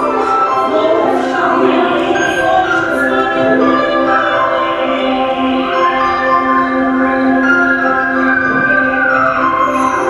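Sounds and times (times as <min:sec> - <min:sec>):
music with long held notes: 0:00.0 - 0:10.0.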